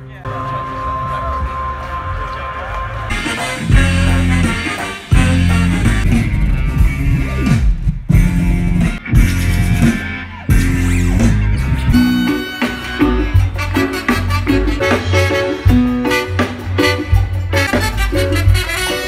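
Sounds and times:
live band with horns: 0.0s - 19.0s.

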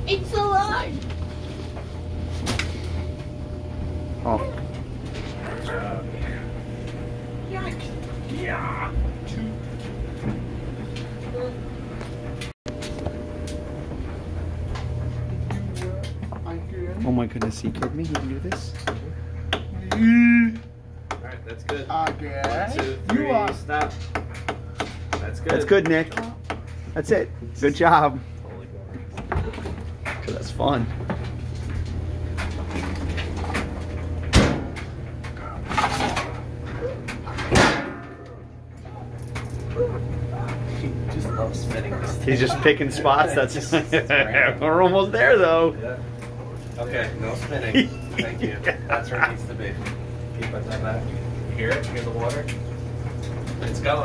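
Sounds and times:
clothes dryer humming: 0.0s - 54.0s.

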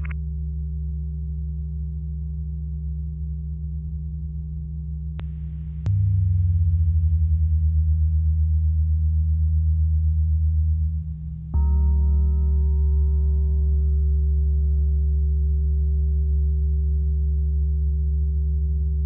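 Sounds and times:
click: 0.0s - 0.2s
deep low tone: 0.0s - 19.0s
droning music low tones: 0.0s - 19.0s.

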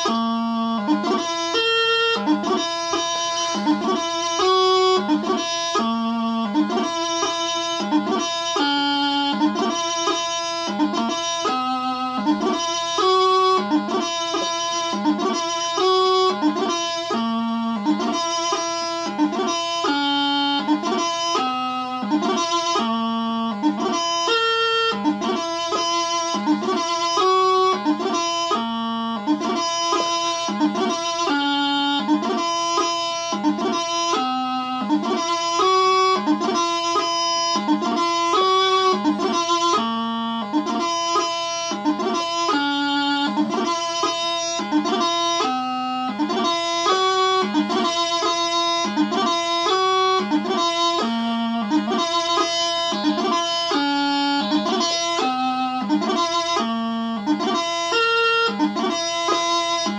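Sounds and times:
practice chanter playing: 0.0s - 59.9s.

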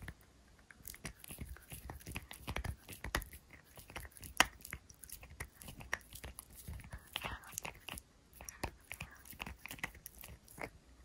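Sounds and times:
puppy crunching on chew: 0.0s - 10.8s.

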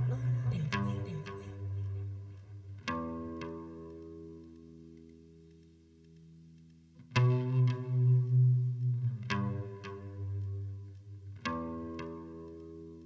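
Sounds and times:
guitar with chorus effect: 0.0s - 13.0s.

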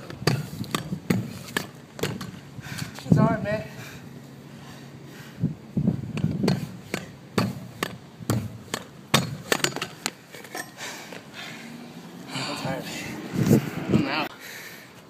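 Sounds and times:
pogo stick knocking on concrete: 0.0s - 2.4s.

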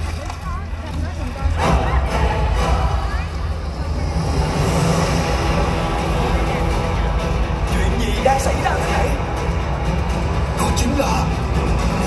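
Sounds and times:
dramatic music over outdoor speakers: 0.0s - 12.0s.

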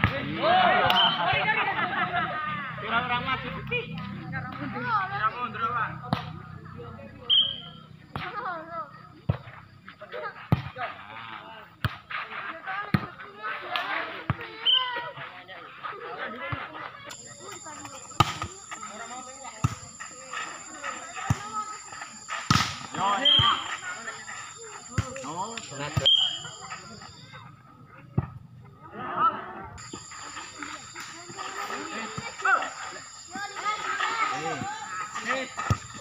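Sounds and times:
voices calling: 0.2s - 9.2s, 14.5s - 27.9s, 28.7s - 36.0s
volleyball smack: 22.5s - 23.6s.

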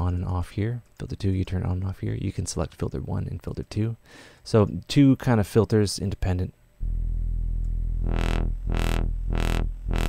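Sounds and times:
synthesizer wobbling bass note: 6.8s - 10.0s.

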